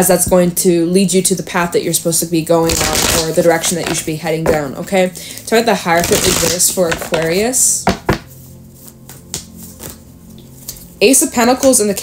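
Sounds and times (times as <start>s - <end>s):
faint musical drone: 0.0s - 12.0s
cards being shuffled: 2.6s - 4.6s, 6.0s - 7.4s, 8.1s - 10.0s.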